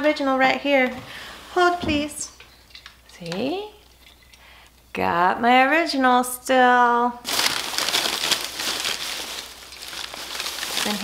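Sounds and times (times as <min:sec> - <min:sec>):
packing paper rustling: 0:07.2 - 0:11.0.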